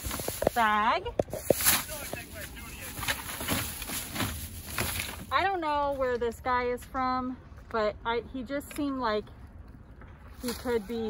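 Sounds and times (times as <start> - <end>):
plastic bag rustling and crinkling: 0.0 - 6.0.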